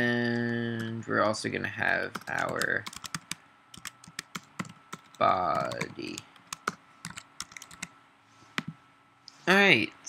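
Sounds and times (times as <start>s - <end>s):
computer keyboard typing: 0.2s - 1.0s, 1.8s - 7.9s.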